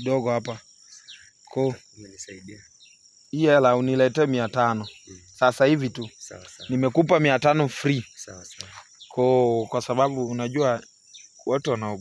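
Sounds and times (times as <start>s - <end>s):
man talking: 0.0s - 0.6s, 1.5s - 2.6s, 3.4s - 10.8s, 11.5s - 12.0s
crickets chirring: 0.0s - 12.0s.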